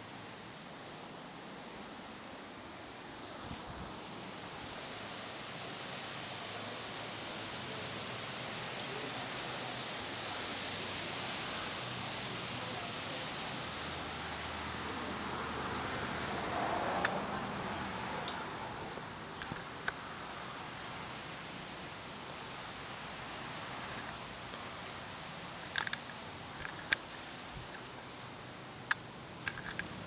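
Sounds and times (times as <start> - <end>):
background hiss: 0.0 - 30.0.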